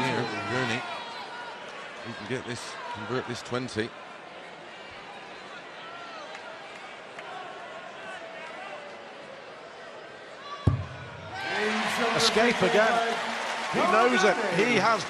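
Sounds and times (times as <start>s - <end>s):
crowd reacting loudly: 10.6s - 15.0s.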